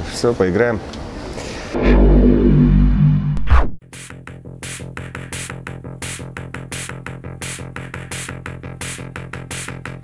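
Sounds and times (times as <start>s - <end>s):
synthesized bass rumble with chord: 1.7s - 3.8s.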